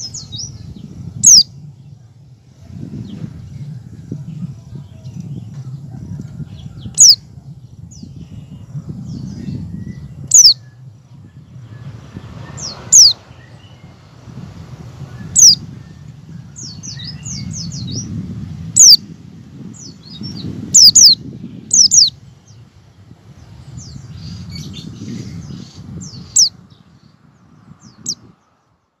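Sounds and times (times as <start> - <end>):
bird sharp high calls: 0.0 - 1.5, 6.6 - 7.2, 8.0 - 10.8, 11.6 - 14.1, 15.0 - 18.1, 18.8 - 19.1, 19.8 - 22.6, 23.8 - 26.7
low rumble: 0.0 - 28.7
soft bird twittering: 0.0 - 29.0.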